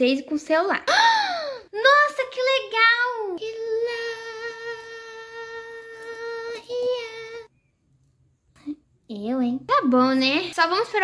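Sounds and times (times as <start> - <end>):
high childlike singing voice: 1.8 - 7.5.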